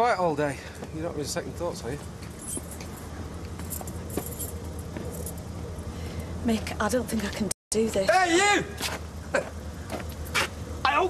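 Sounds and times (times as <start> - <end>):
keys jangling: 2.3 - 5.9.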